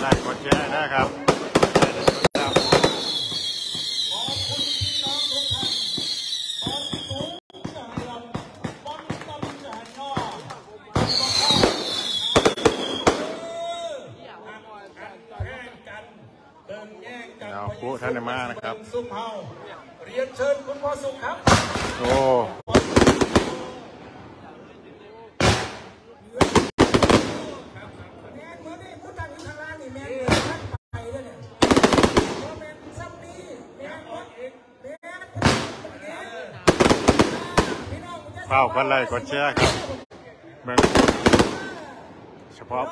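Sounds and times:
rocket bursting with crackling reports: 0.0 - 4.6
fireworks crackling pops: 0.0 - 13.3
rocket whoosh with whistle: 1.9 - 7.4, 11.0 - 13.4
sharp bangs: 25.4 - 27.6.

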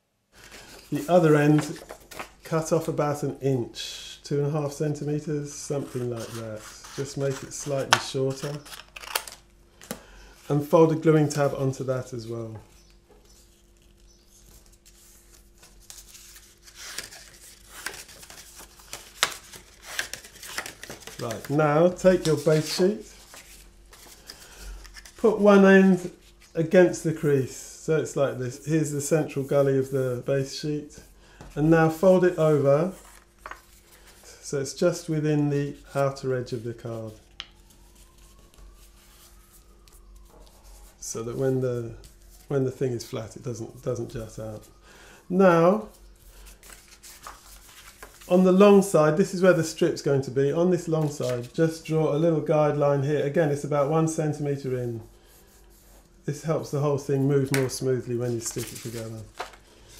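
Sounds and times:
low room hum: 0.0 - 59.9
card crackling: 0.4 - 2.5, 5.8 - 10.1, 13.2 - 25.4, 58.3 - 59.9
card rustling and crinkling: 0.4 - 2.5, 5.7 - 11.5, 12.6 - 26.6, 32.8 - 34.4, 37.0 - 41.0, 45.9 - 48.5, 50.8 - 51.8, 57.4 - 59.9.

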